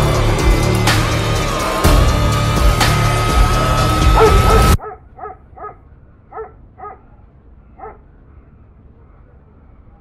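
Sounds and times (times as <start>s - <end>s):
background music: 0.0s - 4.8s.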